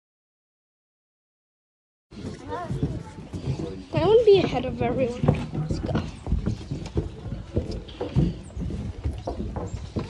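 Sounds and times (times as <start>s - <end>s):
footsteps on wooden planks: 2.1s - 10.0s.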